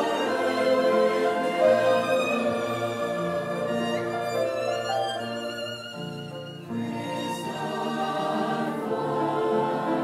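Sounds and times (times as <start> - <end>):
violin playing held notes: 0.0 - 8.4
musical accompaniment: 0.0 - 10.0.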